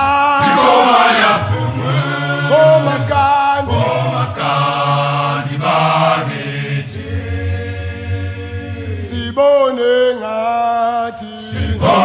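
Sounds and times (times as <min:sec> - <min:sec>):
male a cappella choir singing: 0:00.0 - 0:12.0.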